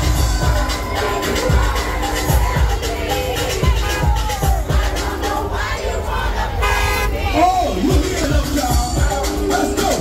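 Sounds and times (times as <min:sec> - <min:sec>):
crowd voices: 0:00.0 - 0:10.0
loud music with low beat: 0:00.0 - 0:10.0.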